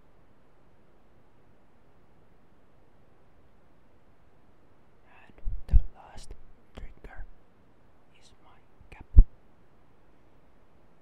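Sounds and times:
breathy whispering: 0:05.1 - 0:07.3, 0:08.1 - 0:09.2.

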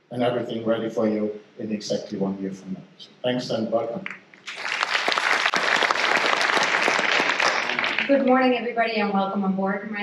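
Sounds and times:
audience applauding: 0:04.0 - 0:08.4.

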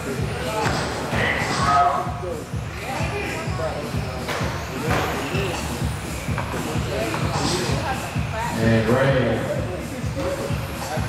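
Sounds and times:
background music: 0:00.0 - 0:11.0
indistinct voices talking: 0:00.0 - 0:11.0.

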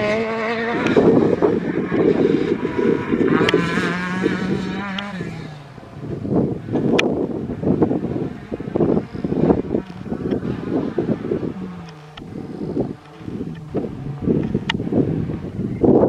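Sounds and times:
rally car engine at high revs: 0:00.0 - 0:16.0
wind gusts on microphone: 0:00.0 - 0:16.0.

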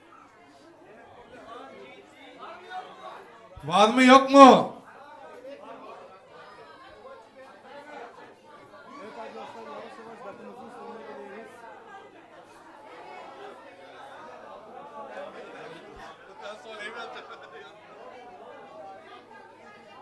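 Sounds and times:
crowd chatter: 0:03.6 - 0:04.8.

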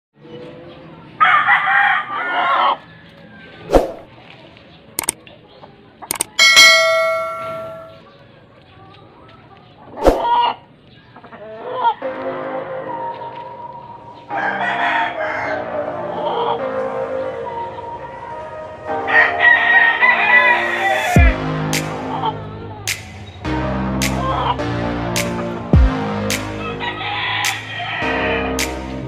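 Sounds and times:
rooster crowing: 0:01.2 - 0:02.8, 0:14.3 - 0:15.8, 0:19.1 - 0:21.2, 0:26.6 - 0:28.4
chickens clucking: 0:04.9 - 0:12.2
sharp ringing strike: 0:06.3 - 0:08.0.

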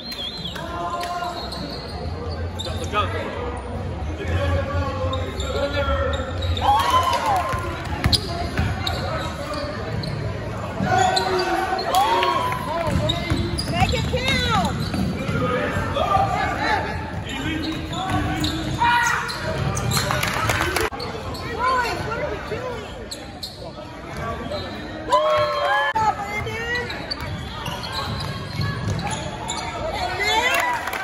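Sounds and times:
sneaker squeak: 0:00.0 - 0:03.9, 0:05.0 - 0:06.8, 0:07.9 - 0:12.0, 0:12.8 - 0:15.8, 0:17.1 - 0:20.3, 0:20.9 - 0:25.6, 0:26.3 - 0:30.6
voices of players and spectators: 0:00.0 - 0:31.0.

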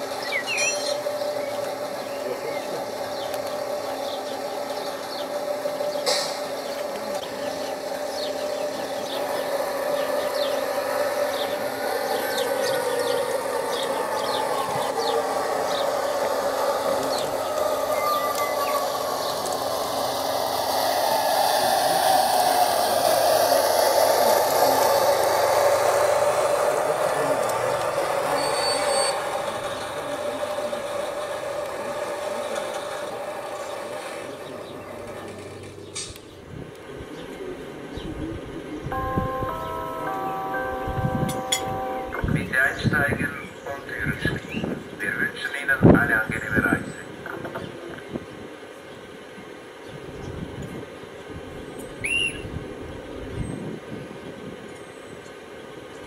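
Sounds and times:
wheels clicking over rail joints: 0:00.0 - 0:37.4
model train motor hum: 0:00.0 - 0:42.1.

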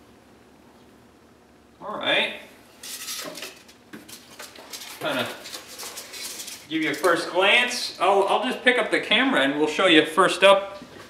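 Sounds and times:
crackly rustling: 0:02.7 - 0:08.7.

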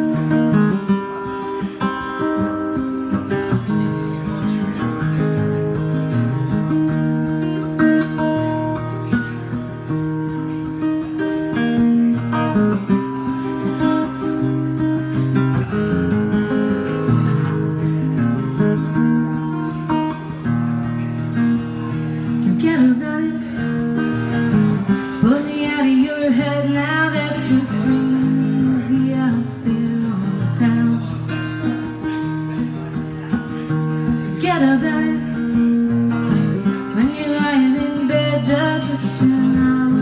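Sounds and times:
acoustic guitar strumming chords: 0:00.0 - 0:40.0
woman singing: 0:22.4 - 0:23.6, 0:25.1 - 0:31.5, 0:34.2 - 0:35.5, 0:36.8 - 0:40.0.

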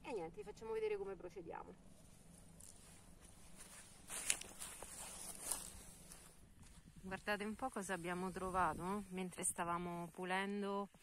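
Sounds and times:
footsteps through grass: 0:01.8 - 0:09.0.

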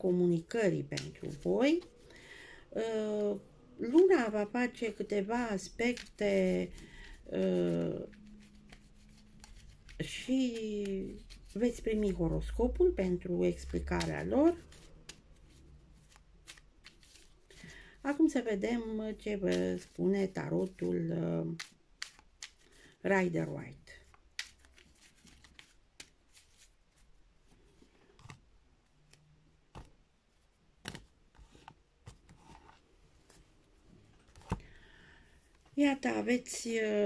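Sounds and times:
handling cards: 0:00.7 - 0:02.2, 0:03.9 - 0:23.0, 0:23.7 - 0:30.0
soft clicks of cards: 0:14.0 - 0:17.4, 0:21.6 - 0:22.8, 0:24.0 - 0:26.7.

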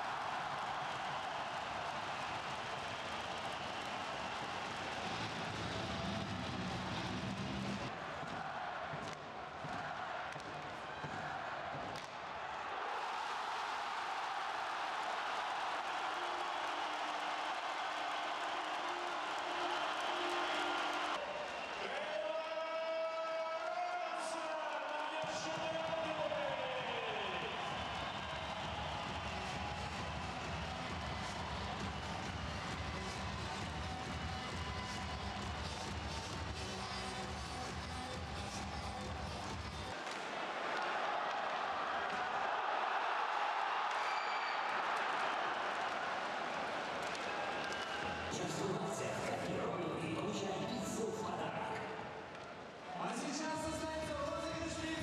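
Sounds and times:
crowd cheering: 0:00.0 - 0:55.0.

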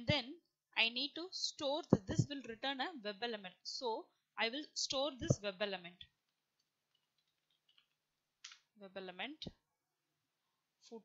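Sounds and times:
person speaking: 0:00.0 - 0:03.8, 0:04.5 - 0:06.0.

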